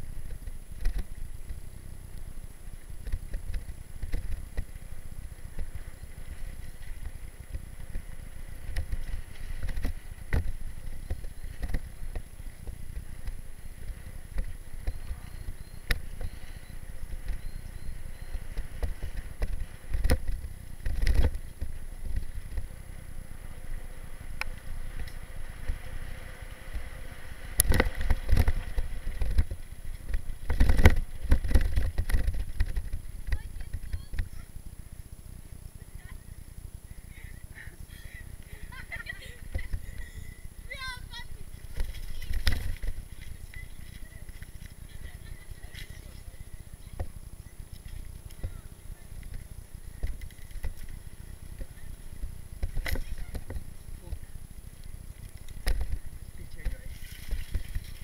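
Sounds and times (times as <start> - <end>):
bike rattling over bumps: 0.0 - 58.0
tyres rumbling on dirt trail: 0.0 - 58.0.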